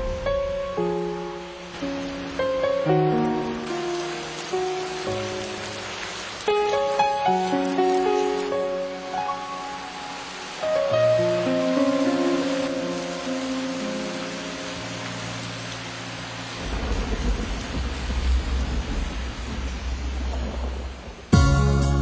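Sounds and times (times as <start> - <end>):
slow music of held chords: 0.0 - 17.5, 21.4 - 22.0
rain hissing: 0.0 - 22.0
low rumble: 16.6 - 21.8.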